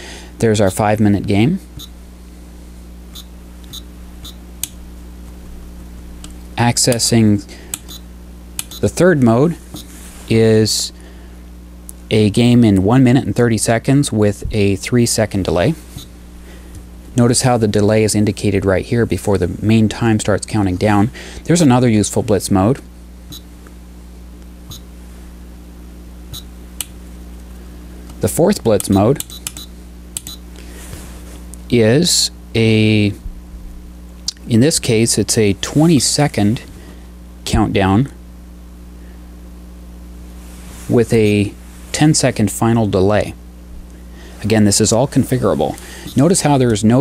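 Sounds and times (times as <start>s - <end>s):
steady low hum: 0.0s - 47.0s
chess clock beeps: 3.1s - 4.4s.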